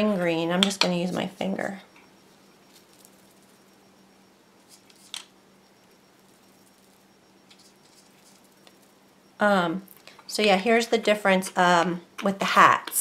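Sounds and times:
low hum: 0.0s - 10.5s
fingertip rubbing powder: 6.2s - 9.0s.

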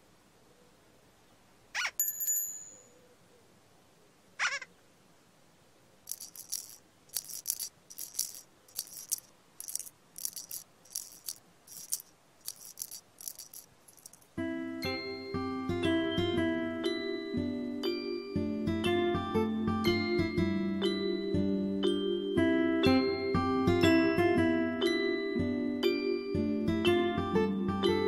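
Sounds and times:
high chime: 2.0s - 3.0s
shaker rattling: 6.0s - 14.4s.

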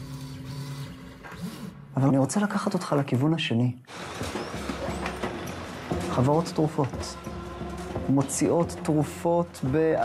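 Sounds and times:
printer motors humming: 0.0s - 1.8s, 3.9s - 8.0s.

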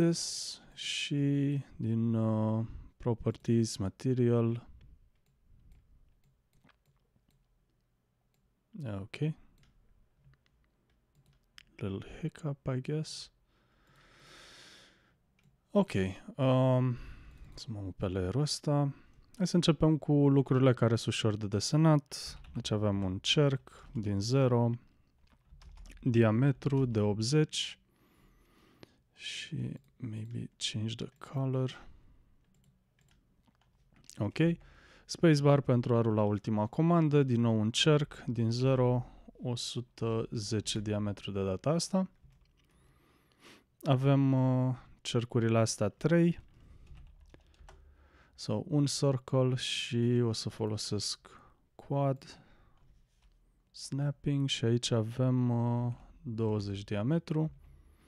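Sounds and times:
computer mouse clicks: 4.7s - 8.5s, 9.5s - 11.8s, 32.4s - 34.2s.

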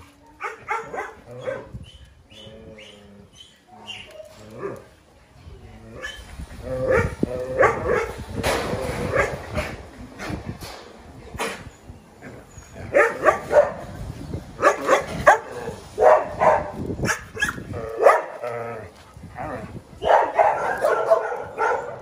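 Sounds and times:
dogs barking and yelping: 0.4s - 4.9s, 6.0s - 8.4s, 9.0s - 9.8s, 12.4s - 14.0s, 14.6s - 18.7s, 20.0s - 22.0s.

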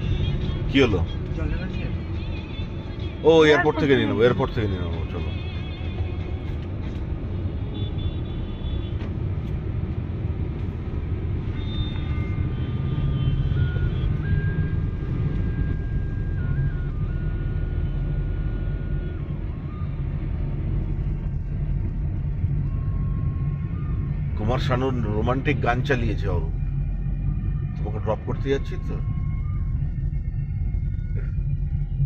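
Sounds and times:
car engine and road rumble: 0.0s - 32.0s.

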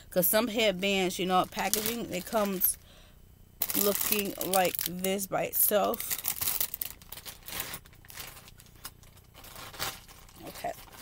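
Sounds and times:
plastic packaging crinkling: 0.8s - 2.8s, 3.6s - 11.0s.

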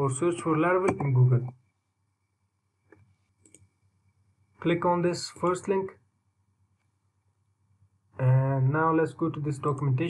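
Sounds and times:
faint computer mouse clicks: 2.9s - 3.7s.

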